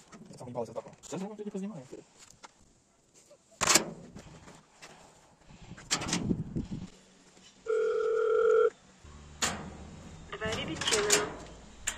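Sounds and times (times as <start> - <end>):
electronic ringing tone: 7.7 - 8.7.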